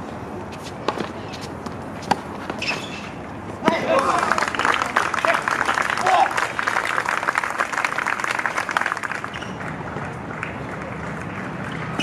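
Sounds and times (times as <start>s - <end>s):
tennis ball bouncing: 0.5s - 4.1s.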